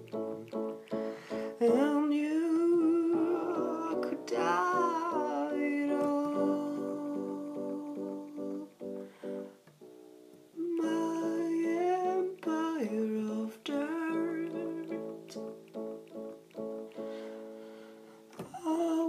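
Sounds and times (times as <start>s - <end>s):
person humming: 0.0s - 9.0s, 10.6s - 15.7s, 18.4s - 19.0s.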